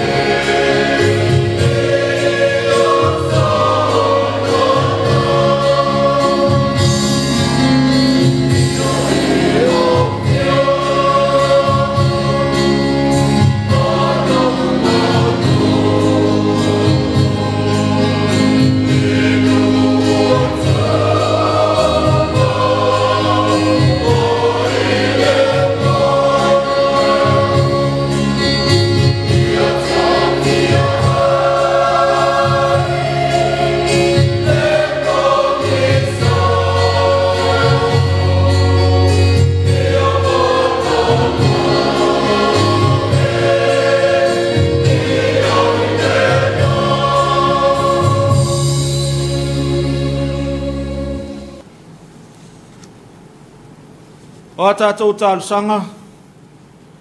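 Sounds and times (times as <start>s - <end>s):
choir singing a hymn: 0.0s - 51.6s.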